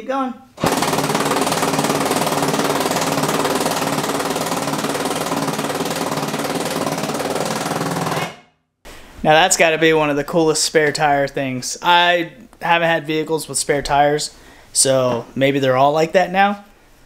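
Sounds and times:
impact wrench hammering: 0.6s - 8.5s.

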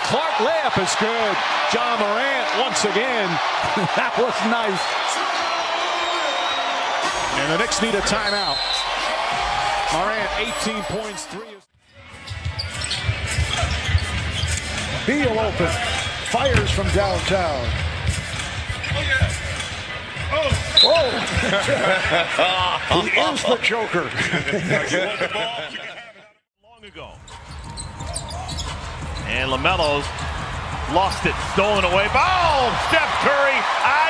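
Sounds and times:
arena crowd noise: 0.0s - 34.0s
sneaker squeaks: 12.2s - 15.0s, 18.1s - 19.8s, 20.4s - 21.3s, 27.2s - 30.0s.

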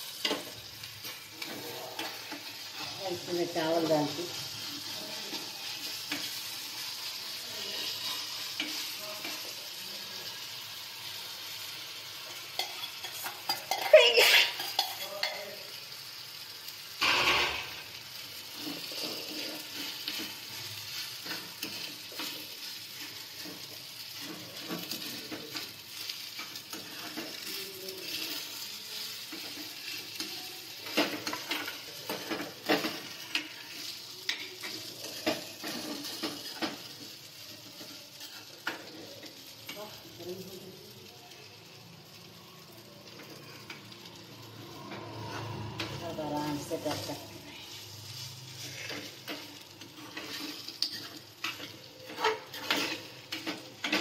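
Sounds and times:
metal spoon scraping a pan: 0.0s - 15.8s, 17.0s - 40.1s, 43.0s - 54.0s
spices sizzling in a metal pan: 0.0s - 54.0s.

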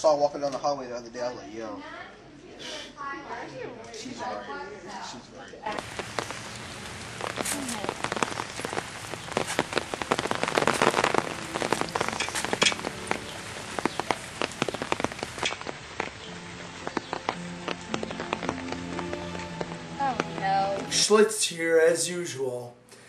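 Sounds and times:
rain pattering: 5.7s - 22.6s.

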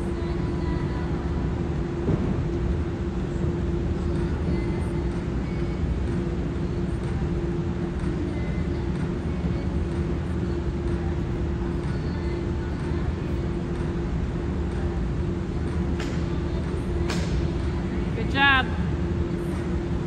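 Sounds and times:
constant hum: 0.0s - 20.0s
gymnasium room noise rumble: 0.0s - 20.0s.

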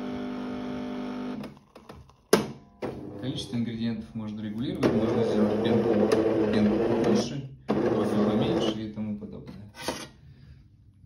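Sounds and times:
coffee machine milk frothing: 4.9s - 8.8s.

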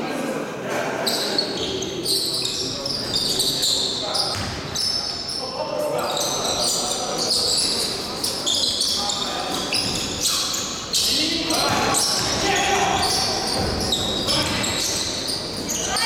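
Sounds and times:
shoes squeaking on gym floor: 1.0s - 16.0s.

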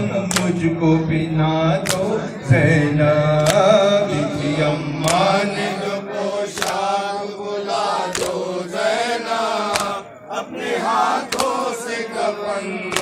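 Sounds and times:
men chanting a lament: 0.0s - 13.0s
palms slapping on chests: 0.3s - 0.6s, 1.8s - 2.1s, 3.4s - 3.8s, 5.0s - 5.4s, 6.5s - 7.0s, 8.0s - 8.6s, 9.7s - 10.0s, 11.2s - 11.8s.

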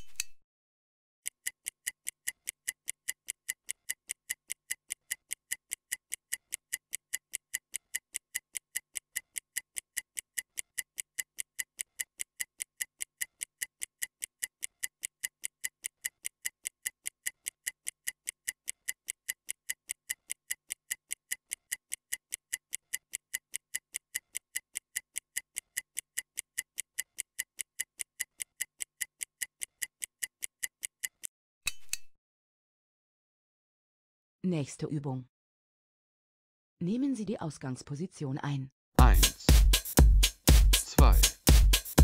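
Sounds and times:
stopwatch ticking: 1.2s - 31.3s, 39.0s - 42.0s.

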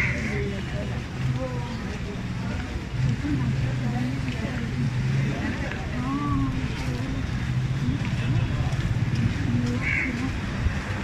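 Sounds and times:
indistinct voices talking: 0.0s - 11.0s
vehicle engine rumble: 0.0s - 11.0s.

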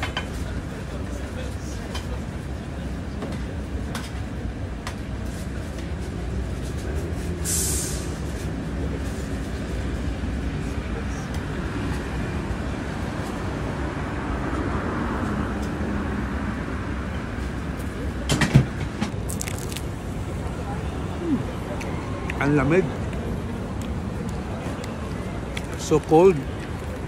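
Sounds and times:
short hiss: 7.4s - 8.2s.

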